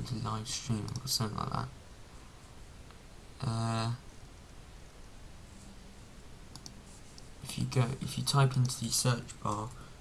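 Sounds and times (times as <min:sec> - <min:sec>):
faint background hiss: 0:00.0 - 0:10.0
computer mouse clicks: 0:00.8 - 0:01.1, 0:06.5 - 0:07.3.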